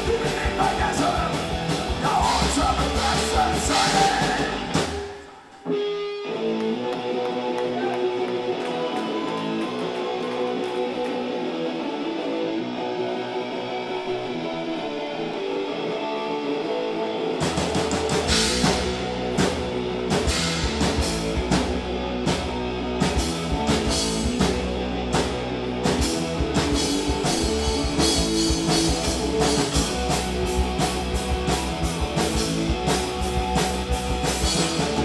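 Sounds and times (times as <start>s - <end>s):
punk band playing live: 0.0s - 35.0s.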